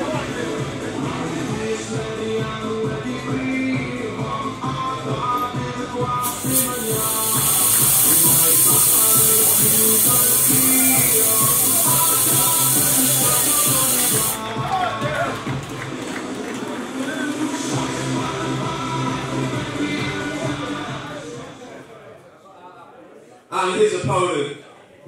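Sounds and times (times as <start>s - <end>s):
walkout music: 0.0s - 21.6s
gas jets hissing: 6.2s - 14.4s.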